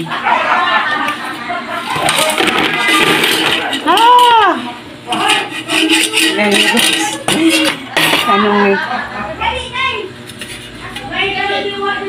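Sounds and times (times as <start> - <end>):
voices talking: 1.6 - 12.0.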